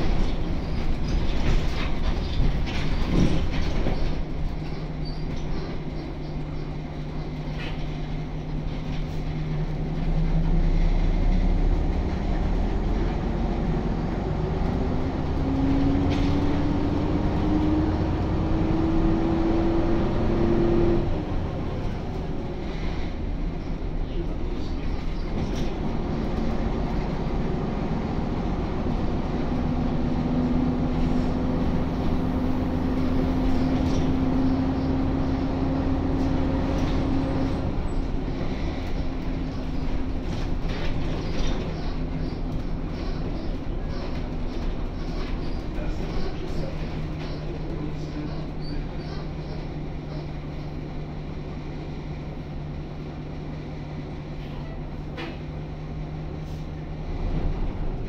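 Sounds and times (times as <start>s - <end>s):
bus diesel engine whining: 0.0s - 58.0s.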